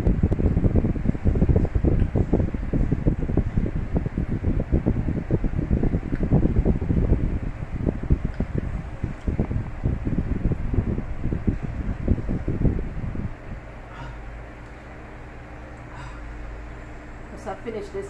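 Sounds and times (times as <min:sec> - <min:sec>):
air buffeting microphone: 0:00.0 - 0:18.0.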